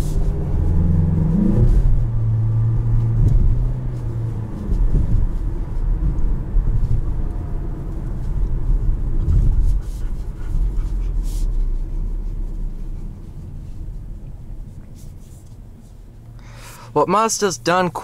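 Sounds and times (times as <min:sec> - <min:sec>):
car engine revving: 0:00.0 - 0:16.8
low engine drone: 0:00.0 - 0:18.0
low road rumble: 0:00.0 - 0:18.0.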